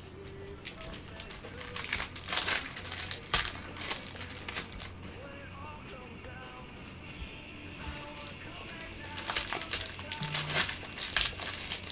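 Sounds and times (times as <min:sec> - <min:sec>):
card wrappers crinkling: 0:00.0 - 0:05.3, 0:08.0 - 0:11.9.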